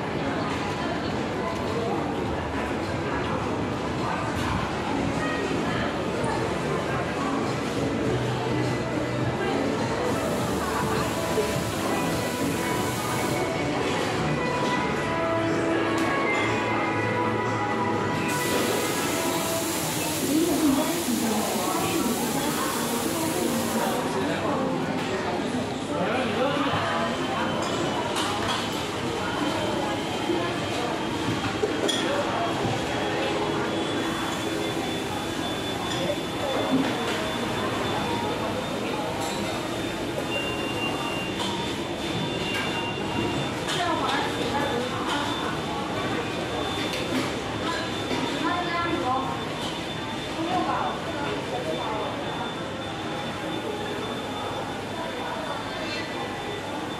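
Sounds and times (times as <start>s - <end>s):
faint background music: 0.0s - 28.2s
food court room noise: 0.0s - 56.9s.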